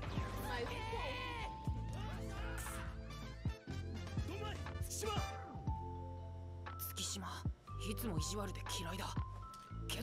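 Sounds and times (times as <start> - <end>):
background music: 0.0 - 10.0
high strained shout: 0.4 - 3.0.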